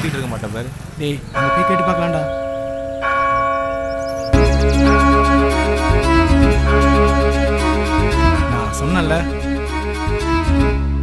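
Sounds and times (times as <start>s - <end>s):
church bell tolling: 1.4s - 9.6s
film score music with deep bass: 2.1s - 11.0s.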